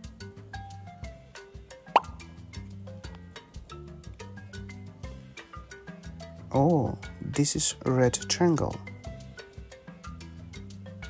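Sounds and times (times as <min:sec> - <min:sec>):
light background music: 0:00.0 - 0:11.0
cartoon plop sound effect: 0:01.9 - 0:02.2.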